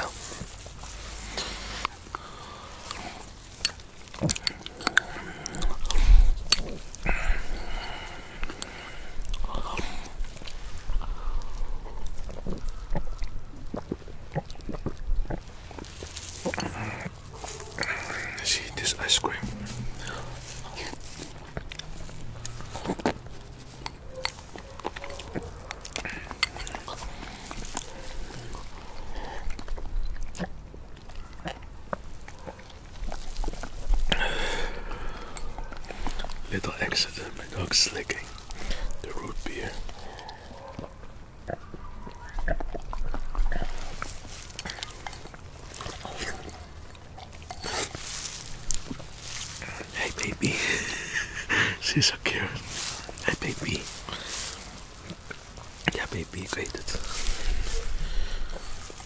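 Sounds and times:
wet mouth and chewing sounds: 0.0s - 59.0s.

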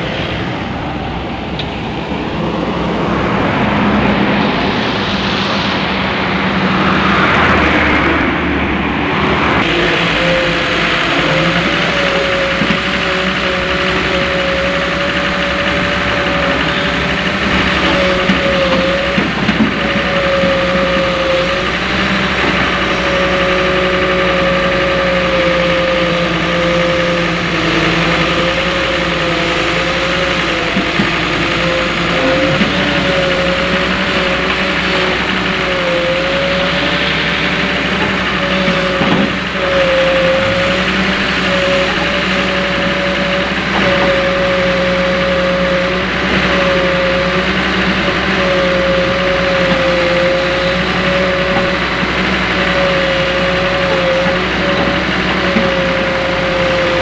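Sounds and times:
excavator diesel engine running: 0.0s - 57.0s
wavering whine: 0.0s - 57.0s.

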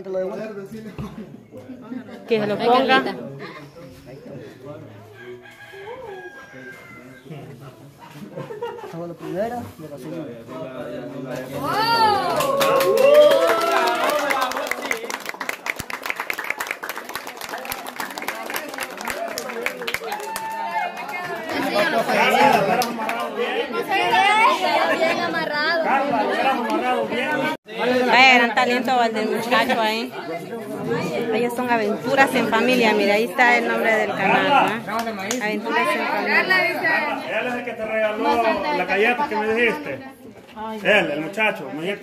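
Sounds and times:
people chattering: 0.0s - 42.0s
rooster crowing: 5.1s - 7.5s.

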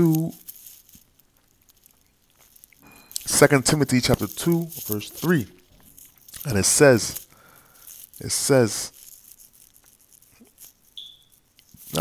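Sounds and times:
man speaking: 0.0s - 0.4s, 3.2s - 5.7s, 6.4s - 7.3s, 8.2s - 9.0s
short high beep: 11.0s - 11.4s.

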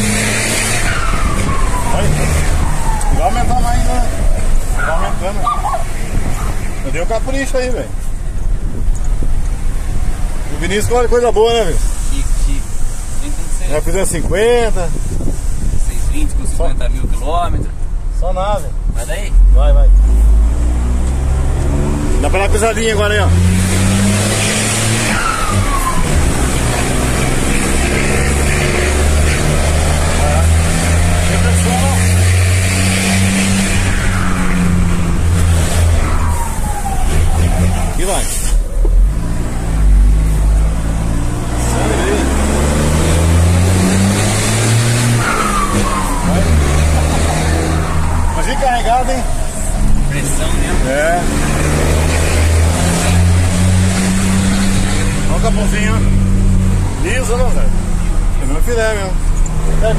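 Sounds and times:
truck engine pulling through gears: 0.0s - 4.8s.

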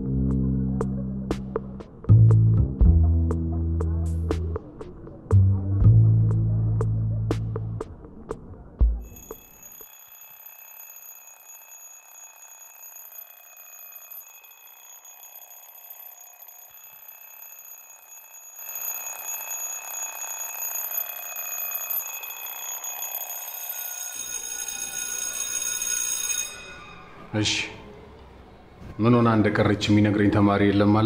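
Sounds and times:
steady high-pitched ringing: 9.0s - 27.8s.

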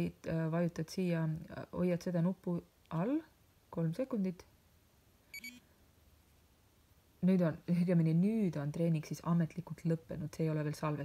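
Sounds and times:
watch short high beep: 5.4s - 5.6s.

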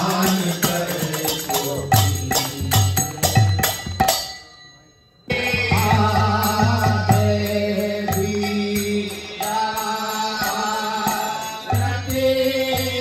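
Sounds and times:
hand cymbals: 0.0s - 13.0s.

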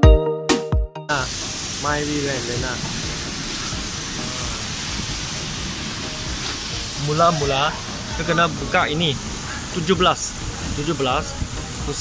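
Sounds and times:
steady hiss: 1.1s - 12.0s.

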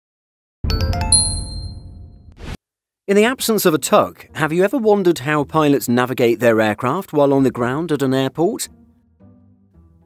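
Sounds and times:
bell-like chimes: 0.7s - 2.2s.

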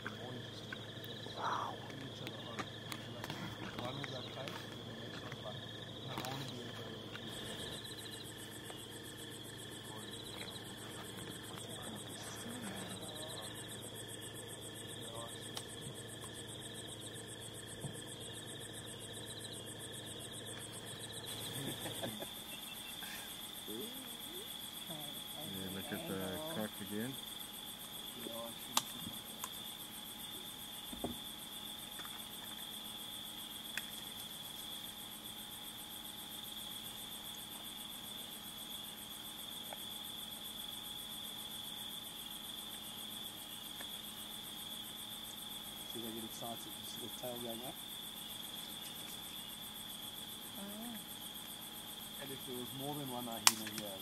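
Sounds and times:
crickets chirring: 0.0s - 54.0s
sharp clicks: 53.4s - 53.9s.

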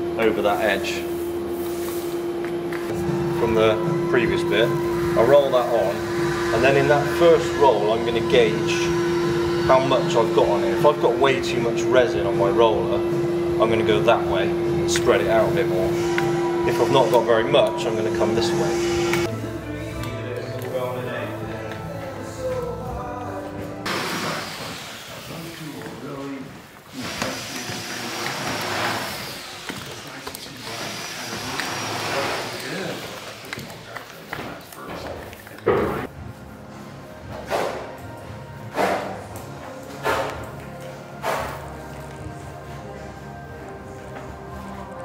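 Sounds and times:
background music: 2.9s - 24.2s, 35.7s - 45.0s
indistinct voices: 2.9s - 36.1s.

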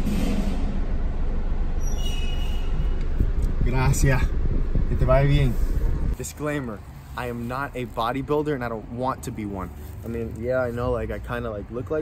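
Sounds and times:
car engine idling: 2.6s - 6.8s.

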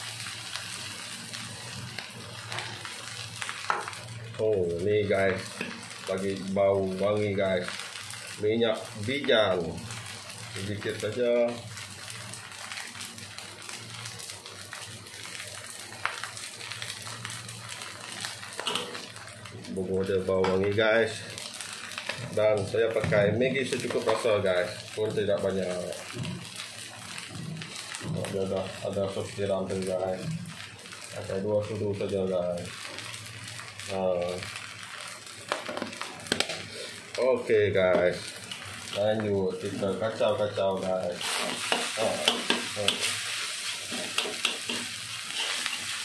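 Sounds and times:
rice sizzling in a wok: 0.0s - 46.0s.

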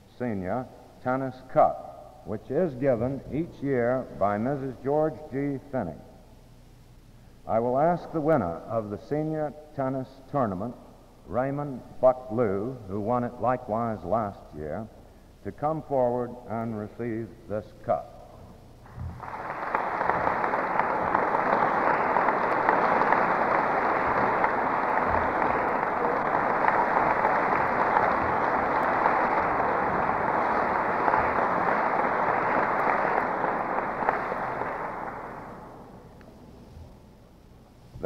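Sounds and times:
audience applause: 19.1s - 36.0s.

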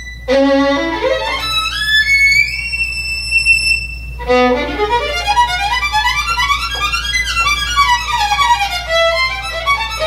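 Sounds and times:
solo violin high note: 0.0s - 10.0s.

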